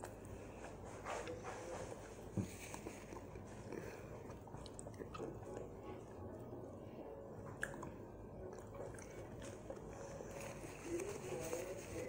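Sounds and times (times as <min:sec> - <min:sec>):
quiet chewing: 0:00.0 - 0:06.4, 0:07.4 - 0:12.0
faint hum: 0:00.0 - 0:12.0.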